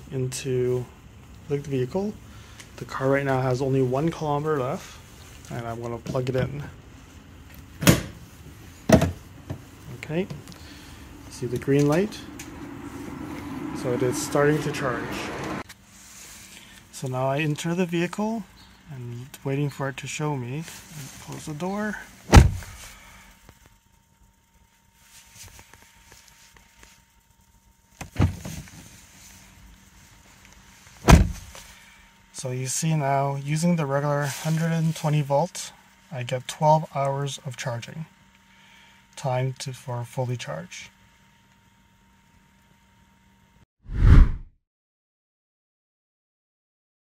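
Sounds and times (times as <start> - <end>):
car door shutting: 22.3 - 22.8, 28.0 - 28.7, 31.0 - 31.6.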